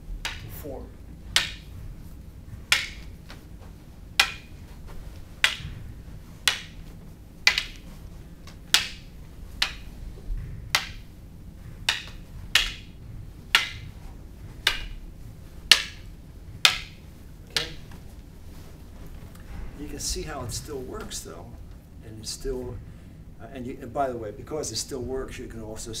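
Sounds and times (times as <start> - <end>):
wooden canes clacking: 0.0 - 21.9.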